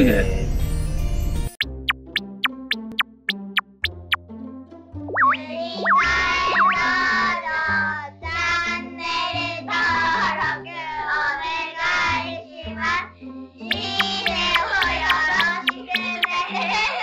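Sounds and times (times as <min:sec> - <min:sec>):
whistle-like pitch swoops: 0:01.6 - 0:04.2, 0:05.1 - 0:07.2, 0:13.7 - 0:16.4
singing over music: 0:13.7 - 0:17.0.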